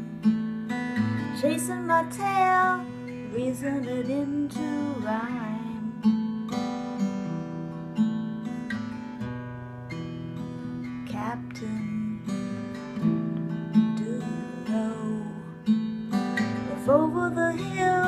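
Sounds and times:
acoustic guitar strumming chords: 0:00.0 - 0:18.0.

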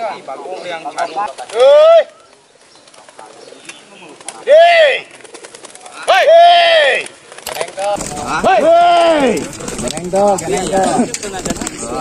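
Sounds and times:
crowd chatter: 0:00.0 - 0:12.0
men shouting: 0:01.5 - 0:02.2, 0:04.4 - 0:05.1, 0:06.0 - 0:07.1, 0:08.0 - 0:11.2.

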